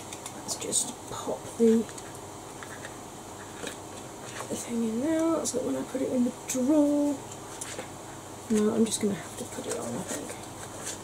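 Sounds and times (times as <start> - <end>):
electric fan running: 0.0 - 11.0.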